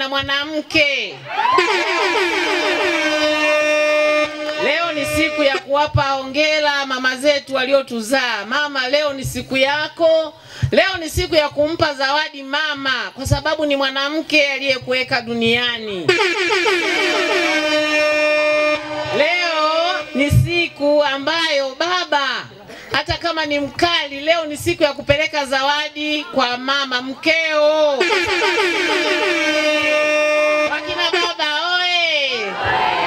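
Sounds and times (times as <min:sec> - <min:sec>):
woman ululating: 0:01.3 - 0:02.3
steady horn-like note: 0:01.6 - 0:05.6, 0:16.1 - 0:20.8, 0:28.0 - 0:31.4.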